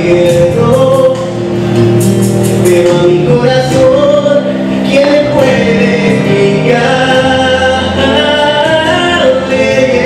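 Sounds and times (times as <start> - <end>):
musical accompaniment: 0.0 - 10.0.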